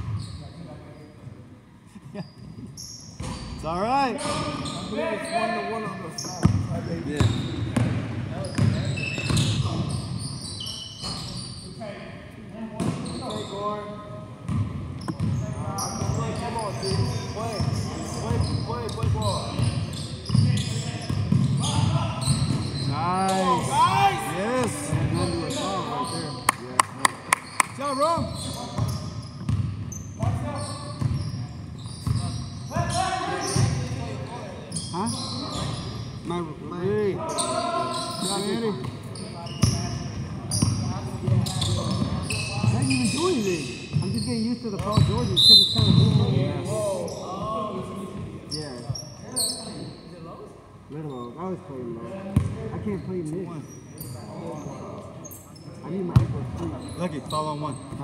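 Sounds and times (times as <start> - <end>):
sneakers squeaking: 0.0 - 1.2, 2.1 - 12.0, 12.8 - 50.1, 51.0 - 51.6, 52.4 - 58.0
basketball bouncing: 28.8 - 29.8.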